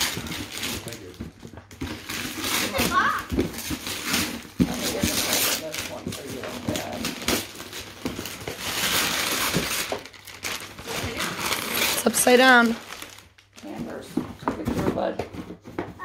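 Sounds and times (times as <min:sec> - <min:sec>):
cardboard box rustling and knocking: 0:00.0 - 0:07.0, 0:13.7 - 0:16.0
wrapping paper crinkling and tearing: 0:00.0 - 0:14.1.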